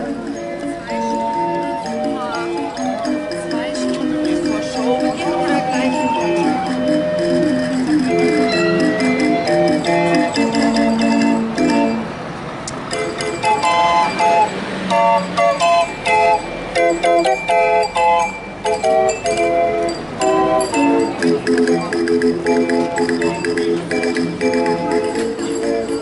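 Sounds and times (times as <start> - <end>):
barrel organ playing melody: 0.0 - 12.1, 12.9 - 26.0.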